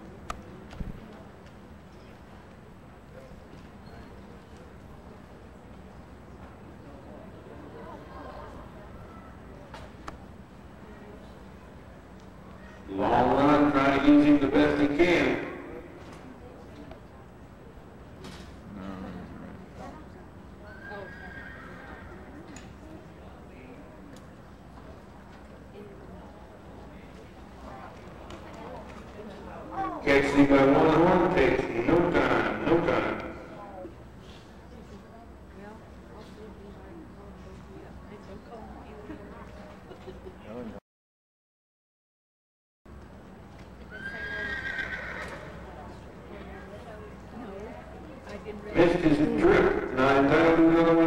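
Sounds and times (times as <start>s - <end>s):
horse whinnying: 20.7s - 22.3s, 43.9s - 45.6s.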